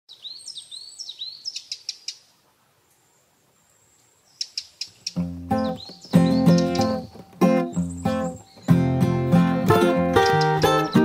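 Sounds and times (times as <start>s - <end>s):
small birds chirping: 0.1s - 11.0s
acoustic guitar music: 5.1s - 11.0s.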